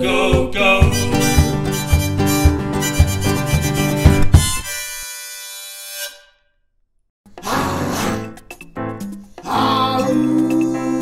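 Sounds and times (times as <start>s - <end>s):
upbeat music: 0.0s - 4.5s, 7.4s - 11.0s
held accordion chord: 0.8s - 5.6s.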